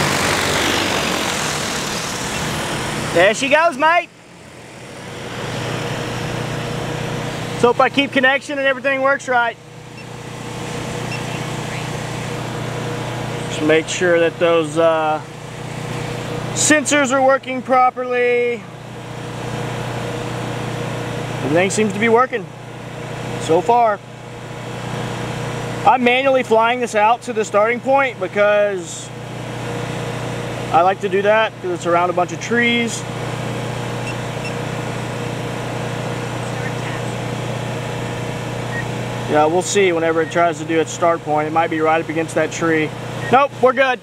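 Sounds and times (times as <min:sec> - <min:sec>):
drone rotors humming: 0:00.0 - 0:26.3, 0:29.1 - 0:44.0.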